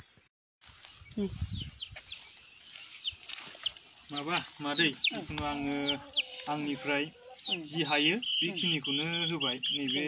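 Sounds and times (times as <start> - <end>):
chick peeping: 1.0 - 10.0.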